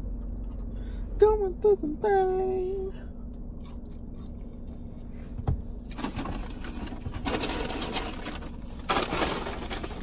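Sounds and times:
paper bag rustling: 5.9s - 10.0s.

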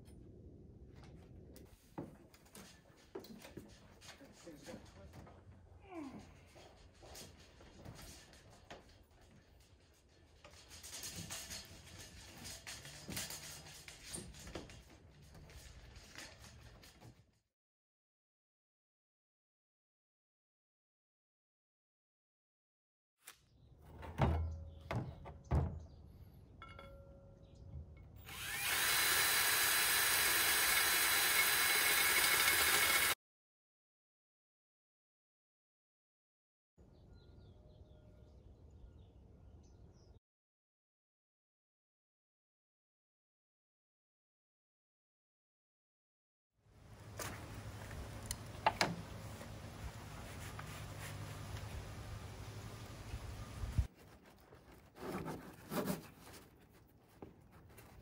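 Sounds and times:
cordless drill boring into plastic: 28.2s - 33.2s.

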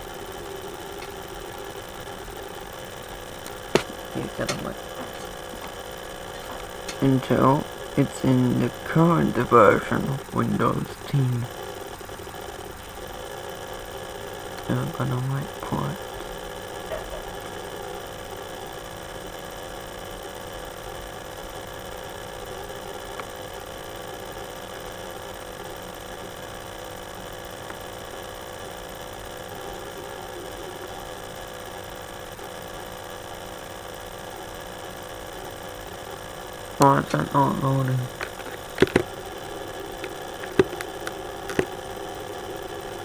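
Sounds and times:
laptop hum with hiss: 0.0s - 43.0s.

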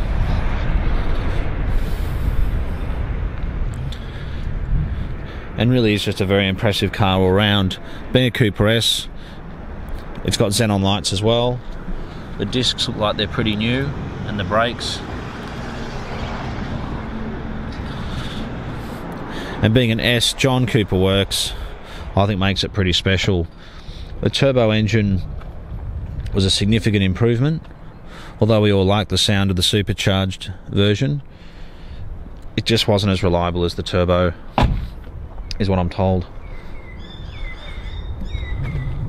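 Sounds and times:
wind buffeting microphone: 0.0s - 28.9s, 34.5s - 39.0s.

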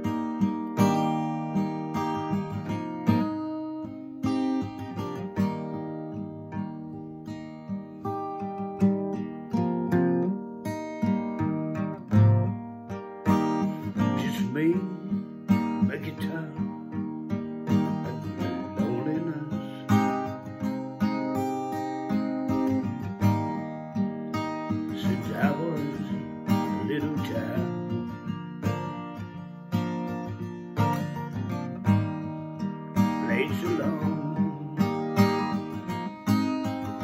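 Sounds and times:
acoustic guitar strummed: 0.0s - 37.0s.

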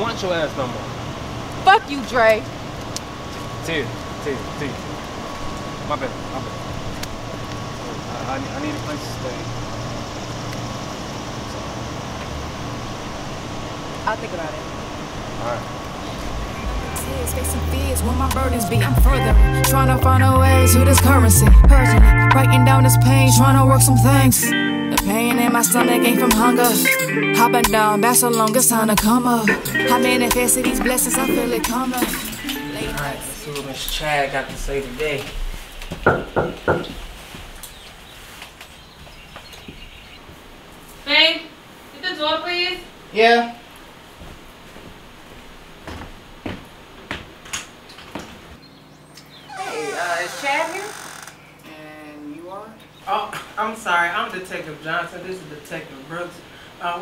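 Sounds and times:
constant low hum: 0.0s - 24.4s
knocks on a door: 35.9s - 37.0s.

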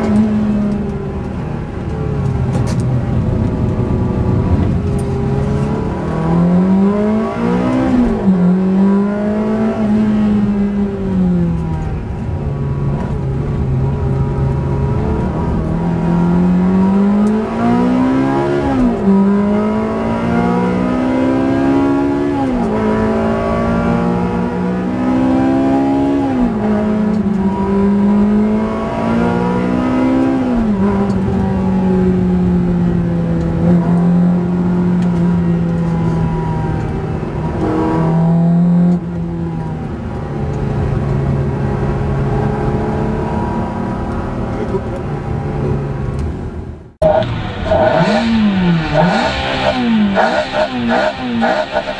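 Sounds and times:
car engine revving through upshifts: 0.0s - 51.9s.

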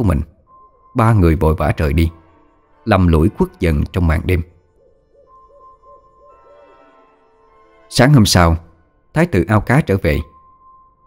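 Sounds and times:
narrator speaking: 0.0s - 0.4s, 1.0s - 2.2s, 2.8s - 4.5s, 7.9s - 10.3s
faint background music: 0.0s - 11.0s.

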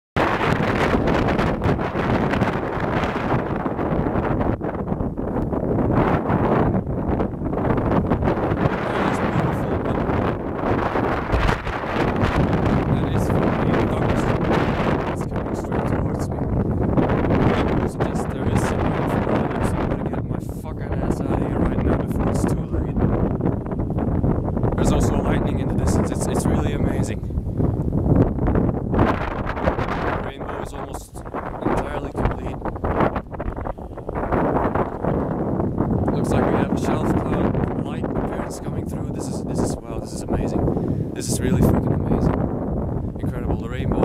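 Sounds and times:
wind buffeting microphone: 0.2s - 44.0s.

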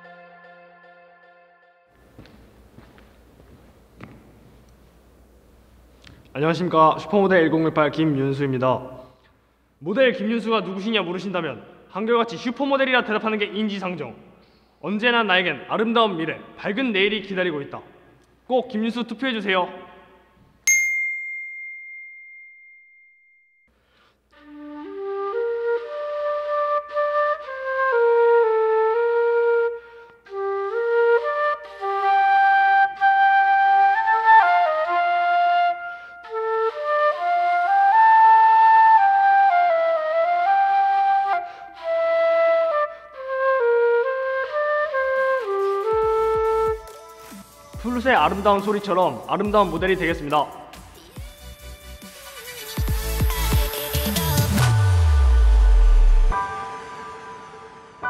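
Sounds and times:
bright chime: 20.7s - 23.7s
flute solo melody: 24.4s - 48.4s.

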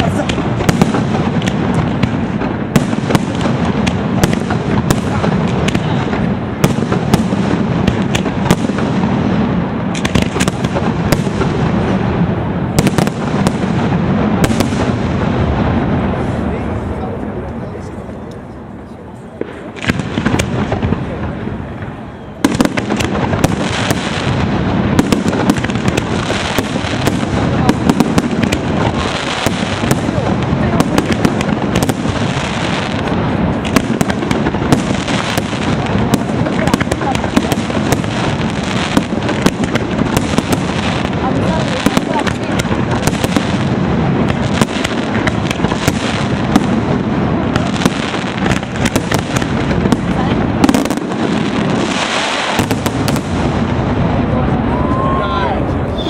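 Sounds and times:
firework bangs and crackles: 0.0s - 56.0s.

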